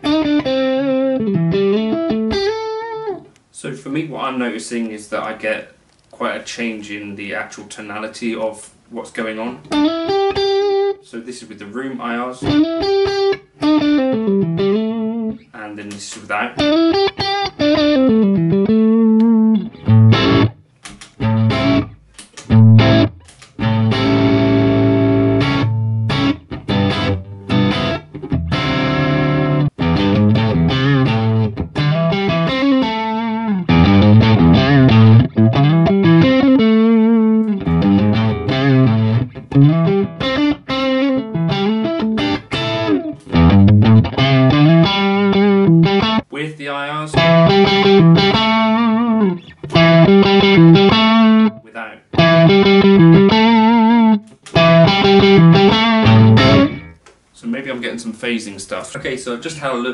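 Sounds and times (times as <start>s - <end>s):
electric guitar playing: 0.0s - 3.4s, 9.7s - 11.0s, 12.4s - 15.5s, 16.6s - 46.3s, 47.1s - 57.0s.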